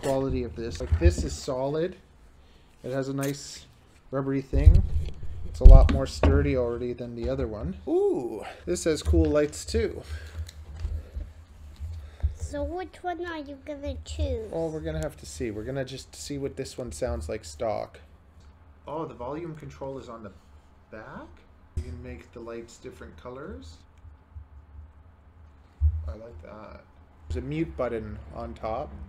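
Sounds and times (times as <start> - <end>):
microphone handling bumps and rubbing: 0.0 - 1.5, 4.5 - 6.6, 25.8 - 26.2
dull low thump: 4.5 - 6.5, 25.8 - 26.1.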